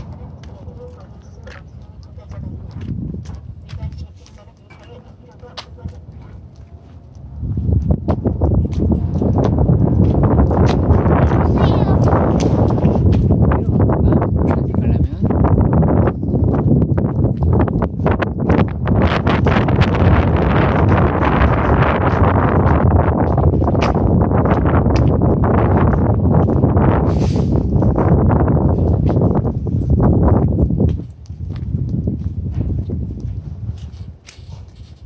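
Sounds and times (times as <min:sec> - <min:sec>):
footsteps: 0:00.0 - 0:35.0
wind buffeting microphone: 0:00.0 - 0:35.0.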